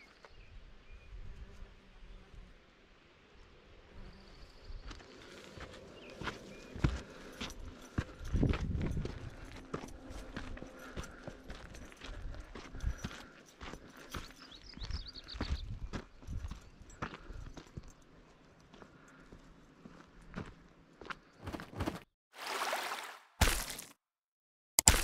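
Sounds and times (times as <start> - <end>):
footsteps on dirt path: 4.8 - 22.1, 23.4 - 23.9.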